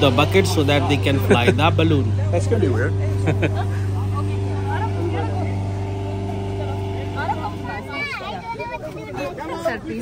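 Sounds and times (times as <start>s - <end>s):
petrol engine fan humming: 0.0s - 10.0s.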